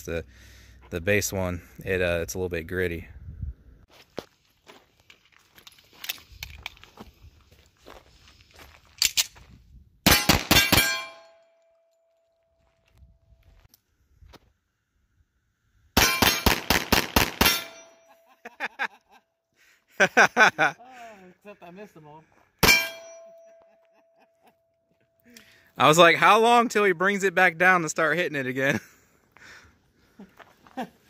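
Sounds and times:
pistol shots: 0:10.0 - 0:11.2, 0:16.0 - 0:17.9
steel targets ringing: 0:10.1 - 0:11.6, 0:16.0 - 0:16.6, 0:17.4 - 0:18.1, 0:22.6 - 0:23.6.

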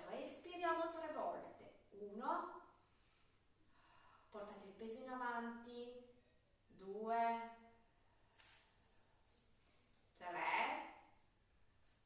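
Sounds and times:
woman counting: 0:00.0 - 0:02.6, 0:06.7 - 0:07.6, 0:10.2 - 0:11.0.

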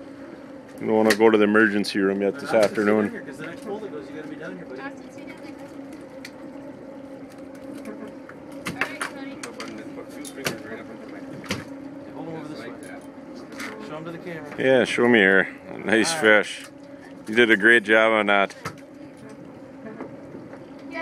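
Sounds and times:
boat engine humming: 0:00.0 - 0:21.0.

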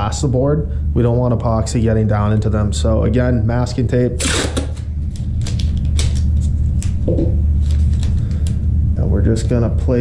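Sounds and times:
low hum: 0:00.0 - 0:10.0
tape tearing off roll: 0:04.2 - 0:07.0
tape crackling and clicking: 0:04.4 - 0:08.6.

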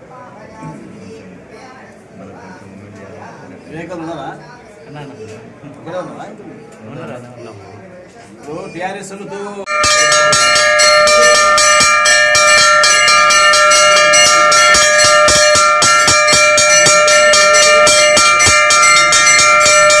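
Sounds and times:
temple bells ringing: 0:09.7 - 0:20.0.

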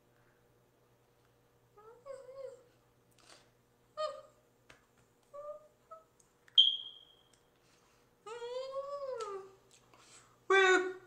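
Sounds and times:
sharp high squeak: 0:06.6 - 0:07.3.

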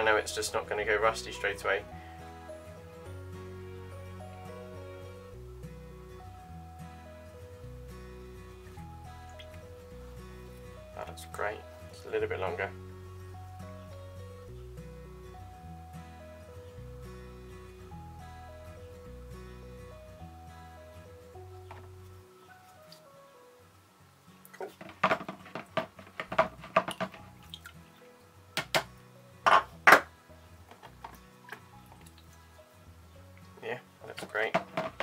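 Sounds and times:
light background music: 0:00.0 - 0:35.0
water sloshing and dripping: 0:09.1 - 0:10.6, 0:24.4 - 0:28.9, 0:30.8 - 0:32.6
sharp knocks: 0:24.8 - 0:27.2.

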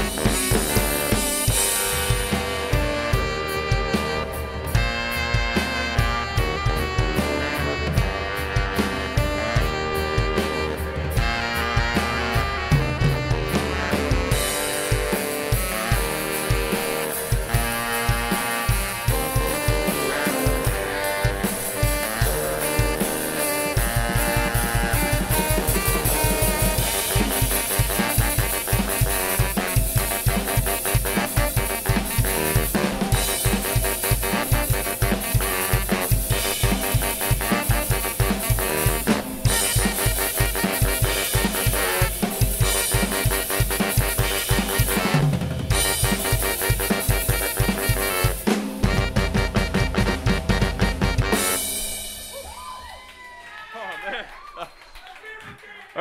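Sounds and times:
saxophones playing: 0:00.0 - 0:52.3
drum kit beat: 0:00.0 - 0:53.3.

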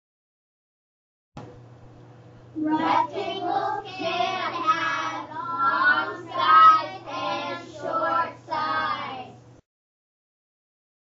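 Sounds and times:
young children singing: 0:02.6 - 0:09.4.

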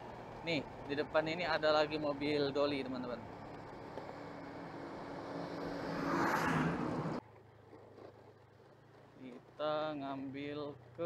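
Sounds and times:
road and wind noise: 0:00.0 - 0:11.0
scooter engine hum: 0:00.0 - 0:11.0.

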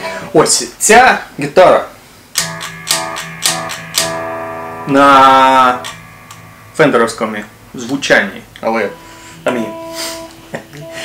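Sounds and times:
electric guitar picked strokes: 0:02.3 - 0:11.0.

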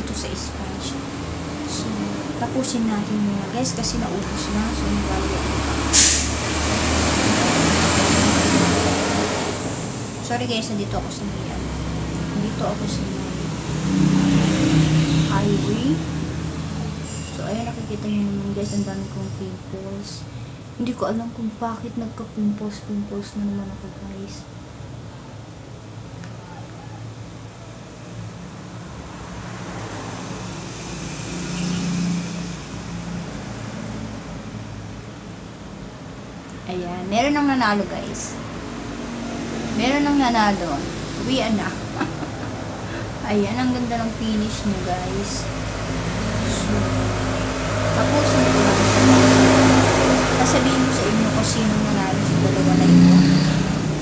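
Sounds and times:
vehicle passing: 0:00.0 - 0:21.0, 0:22.8 - 0:54.0
highway traffic rushing: 0:00.0 - 0:54.0.

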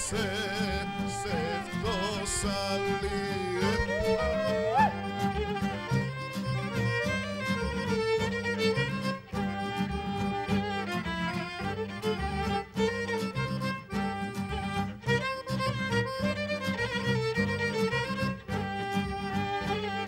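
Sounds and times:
piano accordion: 0:00.0 - 0:20.0
plucked double bass: 0:00.0 - 0:20.0
strummed acoustic guitar: 0:00.0 - 0:20.0
violin melody: 0:00.0 - 0:20.0.

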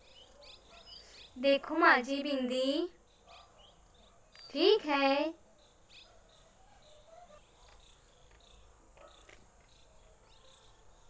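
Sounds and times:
small clicks: 0:04.3 - 0:04.6.

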